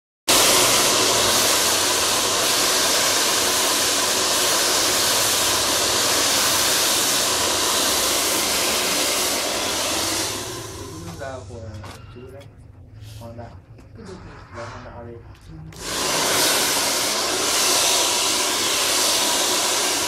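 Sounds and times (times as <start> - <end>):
hair dryer running: 0.3 - 11.4, 15.7 - 20.0.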